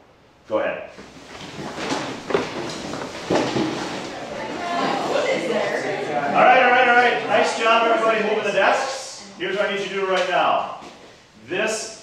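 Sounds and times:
desks scraping across floor: 1.0s - 6.3s.

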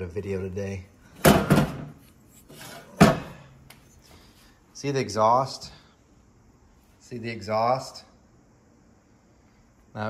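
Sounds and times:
heavy metal part knocking on workbench: 1.2s - 1.9s.

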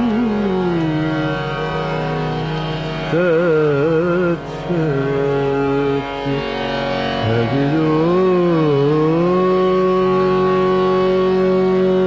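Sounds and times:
man singing classical vocals: 0.0s - 1.8s, 3.1s - 12.0s
instrumental accompaniment: 0.0s - 12.0s.

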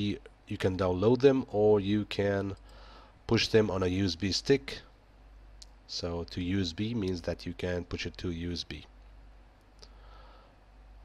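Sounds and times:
faint clicks: 5.6s - 5.8s, 9.0s - 10.0s.

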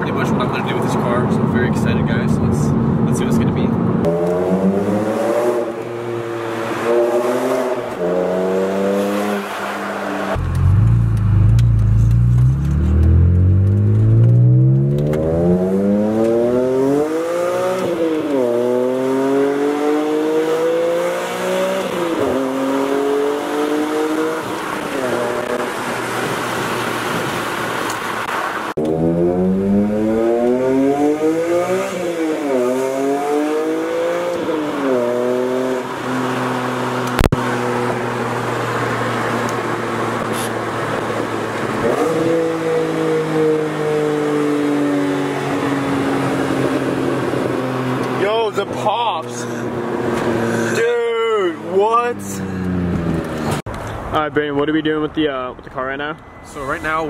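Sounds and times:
car engine accelerating through gears: 2.7s - 50.9s, 51.6s - 53.7s.

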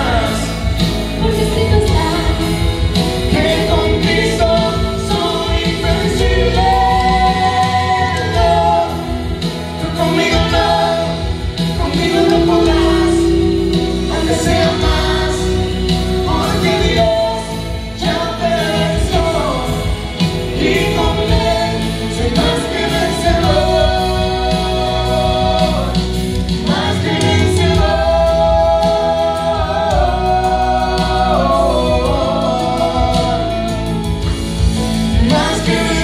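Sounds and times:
live band accompaniment: 0.0s - 36.0s
man and woman singing duet: 0.0s - 36.0s.

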